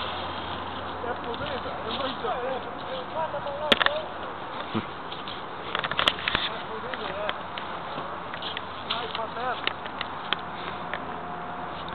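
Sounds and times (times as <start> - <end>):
distant voices calling: 0.0 - 11.9
outdoor background hiss: 0.0 - 11.9.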